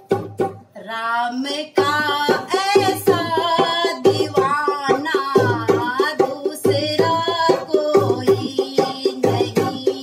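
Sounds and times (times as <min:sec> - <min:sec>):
hand drum quick beat: 0:00.0 - 0:00.8, 0:01.8 - 0:10.0
woman singing devotional song: 0:00.8 - 0:10.0.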